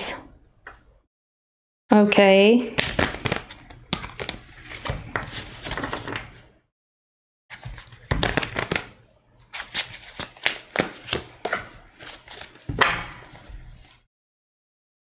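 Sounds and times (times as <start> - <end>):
cards being shuffled: 2.8 - 6.3, 7.5 - 8.9, 9.5 - 14.0.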